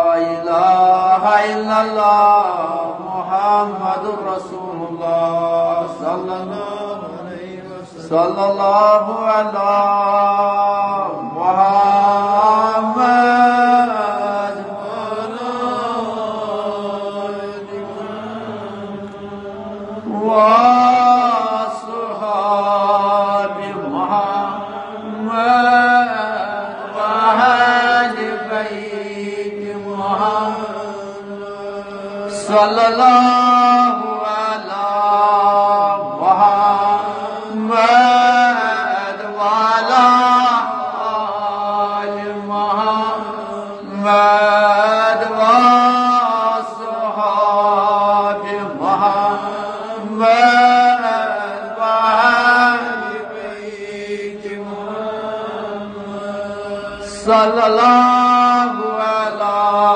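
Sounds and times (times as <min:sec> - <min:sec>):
man chanting melodically: 0:00.0 - 0:59.9.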